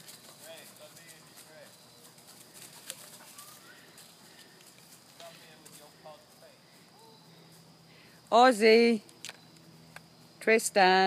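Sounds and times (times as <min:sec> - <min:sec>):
footsteps on dry leaves: 0:00.0 - 0:07.8
faint distant voices: 0:00.0 - 0:09.0.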